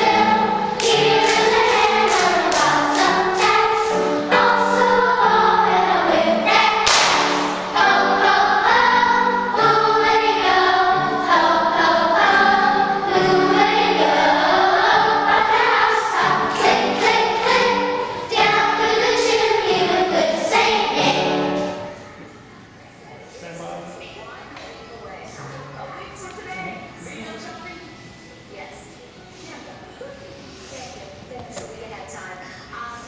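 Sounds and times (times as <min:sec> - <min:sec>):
children's choir singing: 0:00.0 - 0:22.4.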